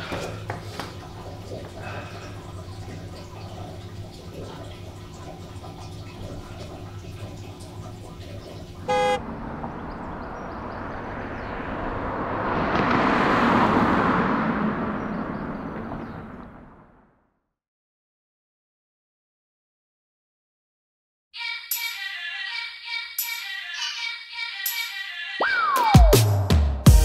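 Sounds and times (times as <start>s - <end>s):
low hum: 1.0s - 12.7s
car horn toot: 8.9s - 9.2s
car passing close by: 8.9s - 17.2s.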